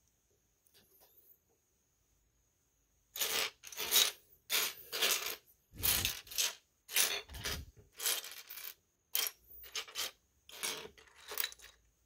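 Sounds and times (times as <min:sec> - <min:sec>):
plastic bricks clattering on table: 0:03.2 - 0:11.9.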